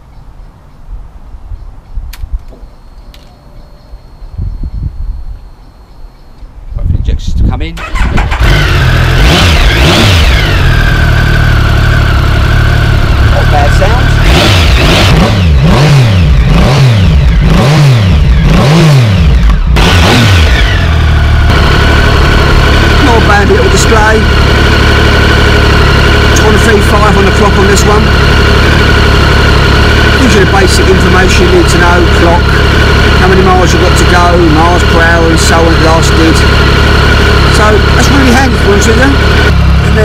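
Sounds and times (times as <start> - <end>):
motorcycle engine revving and idling: 7.6 - 40.0.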